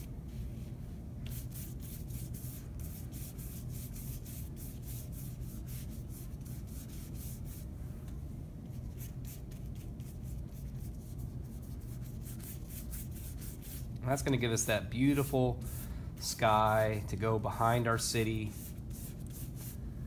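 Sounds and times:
paintbrush swishing on paper: 0.0s - 7.7s, 8.8s - 13.9s, 15.1s - 15.9s, 18.3s - 19.8s.

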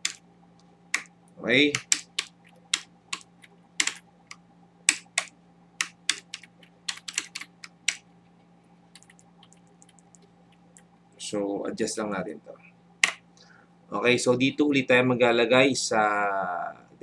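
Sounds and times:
computer keyboard typing: 0.0s - 0.2s, 0.9s - 1.1s, 1.7s - 8.0s, 8.9s - 10.9s.

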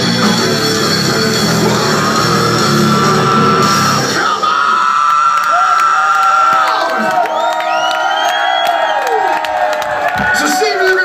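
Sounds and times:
heavy metal song: 0.0s - 5.4s
crowd cheering and whooping: 1.0s - 11.0s.

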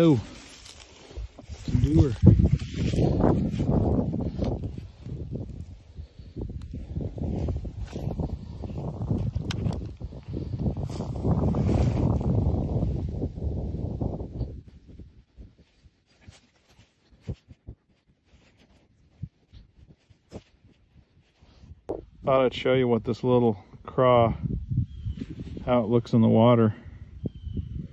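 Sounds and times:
wind buffeting microphone: 0.0s - 16.3s, 18.7s - 27.9s.

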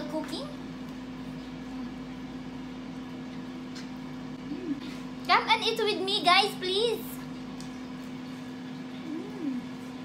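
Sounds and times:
air fryer fan humming: 0.0s - 10.0s.

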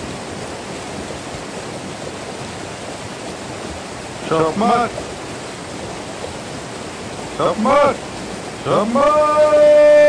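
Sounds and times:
water rushing over rocks: 0.0s - 10.0s.

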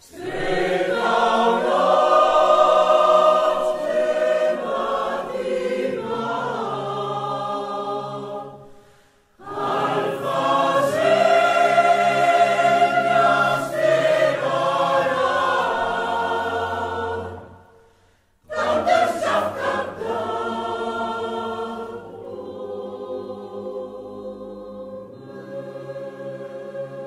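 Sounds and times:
choir singing: 0.0s - 27.0s.

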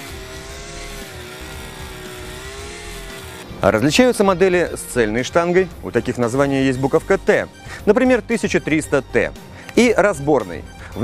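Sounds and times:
string trimmer engine cutting grass: 0.0s - 7.3s.

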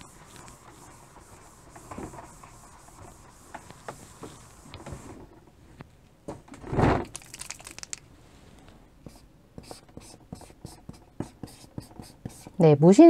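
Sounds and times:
chalk tapping and scratching: 0.0s - 5.1s, 9.0s - 12.6s
noisy rustle or thump: 0.1s - 8.8s.

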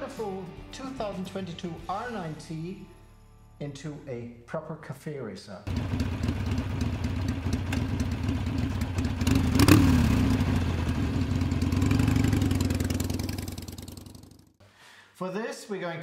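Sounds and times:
motorcycle engine running: 5.7s - 14.6s.

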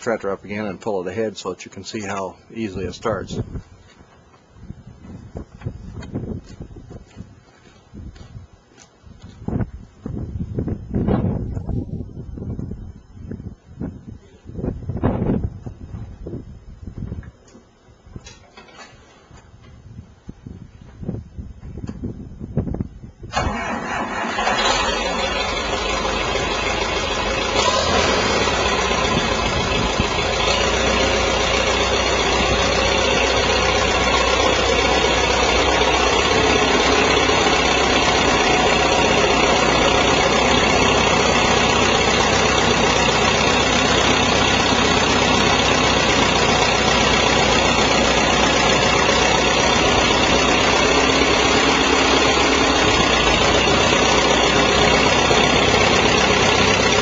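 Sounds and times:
tractor diesel engine running: 0.0s - 7.3s, 23.3s - 57.0s.

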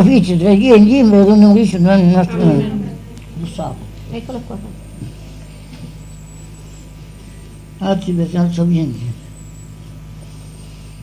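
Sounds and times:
old recording hum and hiss: 0.0s - 11.0s.

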